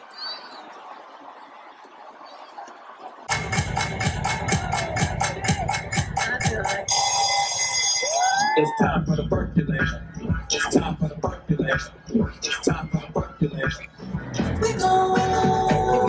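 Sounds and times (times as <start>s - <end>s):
heavy bass: 3.3s - 7.0s, 8.8s - 16.0s
loud track with fast beat: 3.3s - 7.0s, 8.2s - 16.0s
high electronic tones: 3.3s - 8.5s
gliding vocals: 8.6s - 16.0s.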